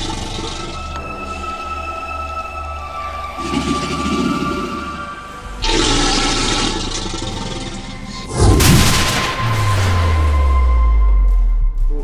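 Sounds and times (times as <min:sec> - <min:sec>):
music drone: 0:00.0 - 0:12.0
rushing noise: 0:08.3 - 0:11.6.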